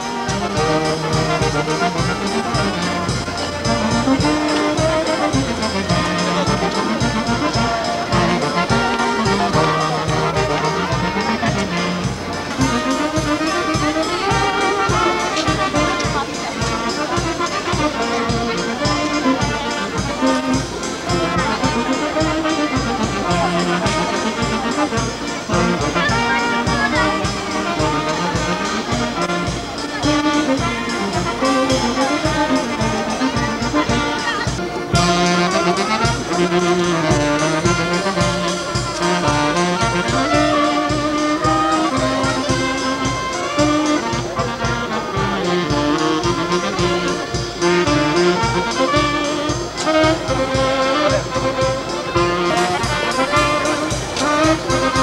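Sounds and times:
bass drum and cymbal beat: 0.0 - 55.0
brass and saxophone tune: 0.0 - 55.0.

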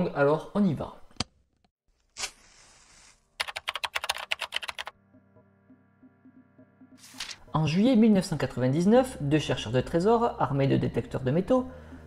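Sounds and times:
short burst and hiss: 2.2 - 3.3
sharp typing-like clicks: 3.4 - 4.9.

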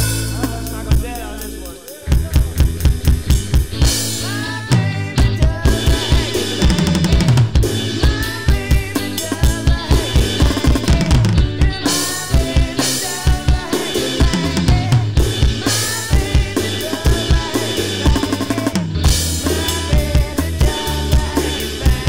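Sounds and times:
electronic drum kit beat: 0.0 - 22.0
rock band backing: 0.0 - 22.0.

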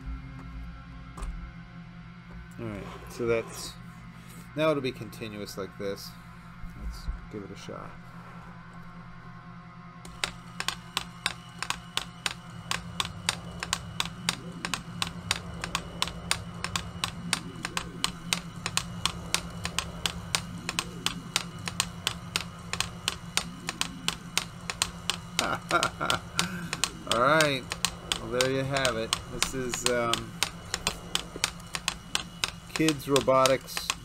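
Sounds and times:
plastic fingers tapping: 10.1 - 34.0
small geared motor whirring: 10.1 - 34.0.

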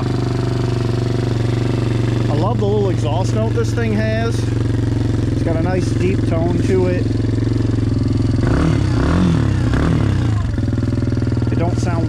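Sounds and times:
small engine idling and revving: 0.0 - 12.0.

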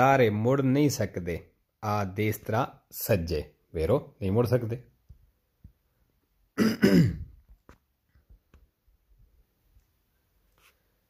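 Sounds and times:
man clearing his throat: 6.6 - 7.4.

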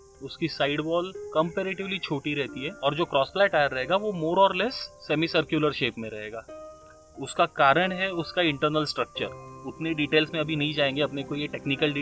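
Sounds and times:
man talking: 0.2 - 6.4, 7.2 - 12.0.

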